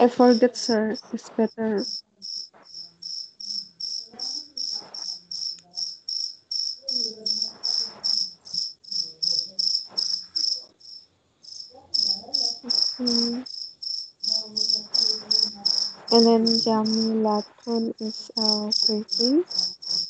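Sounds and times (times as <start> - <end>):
insect chirping: 0.0 - 20.0.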